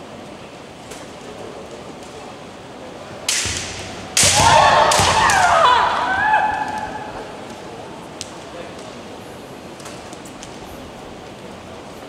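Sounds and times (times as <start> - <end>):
bamboo sword strikes: 3.3 - 5.6
women shouting high-pitched: 4.4 - 7.2.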